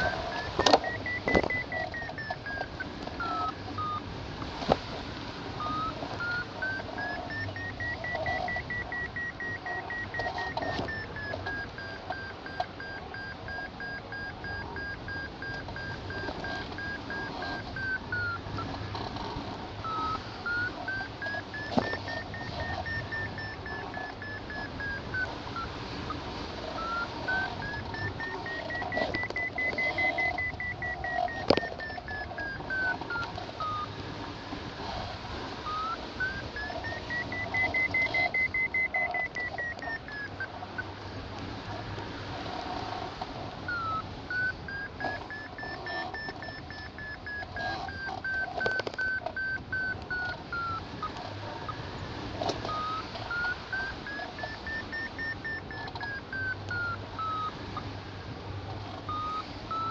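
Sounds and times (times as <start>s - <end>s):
variometer beeping: 0.0s - 4.7s, 5.4s - 59.9s
sharp clicks: 43.7s - 51.2s.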